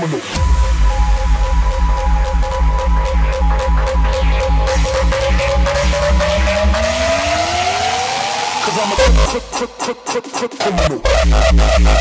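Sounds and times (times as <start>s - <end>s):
fast kick drums: 0.3s - 7.4s, 9.0s - 9.9s
synth riser climbing in pitch: 0.3s - 9.9s.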